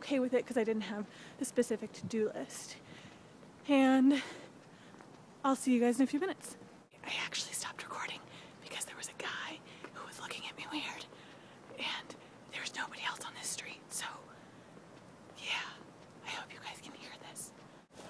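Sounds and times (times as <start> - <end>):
woman whispering: 7.0 - 14.4, 15.4 - 17.6.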